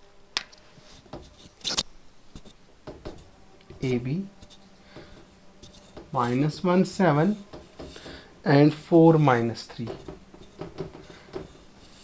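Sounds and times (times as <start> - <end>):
marker scratching on whiteboard: 2.4 - 8.2, 9.1 - 12.0.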